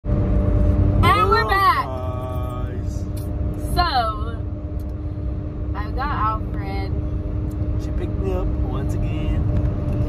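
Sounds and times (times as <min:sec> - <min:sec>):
car cabin rumble and hum: 0:00.0 - 0:10.0.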